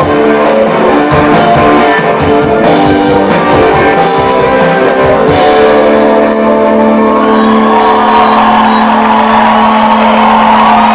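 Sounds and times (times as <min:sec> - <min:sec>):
live rock band playing: 0:00.0 - 0:10.9.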